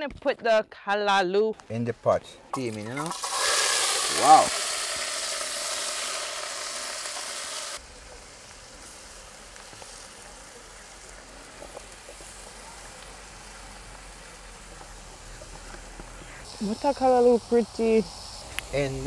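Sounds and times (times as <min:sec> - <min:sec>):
vegetables sizzling in hot oil: 0:02.6 - 0:19.0.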